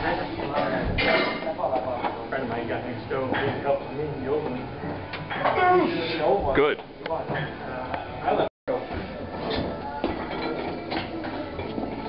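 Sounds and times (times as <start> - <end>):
background music: 2.3 - 12.0.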